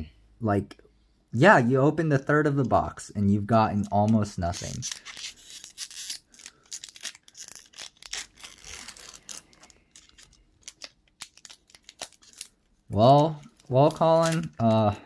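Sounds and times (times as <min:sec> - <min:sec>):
foil wrapper tearing and crinkling: 0:03.8 - 0:15.0.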